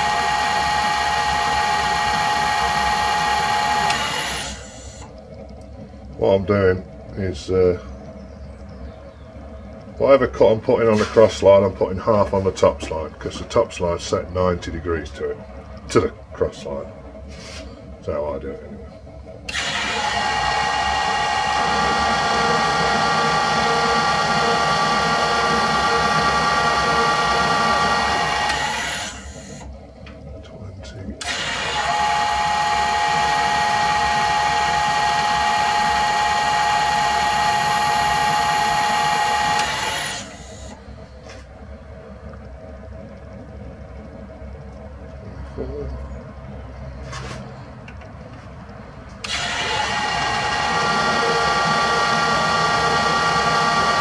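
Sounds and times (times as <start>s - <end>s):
metal lathe whining: 0.0s - 5.2s, 19.4s - 29.8s, 31.2s - 41.0s, 49.1s - 54.0s.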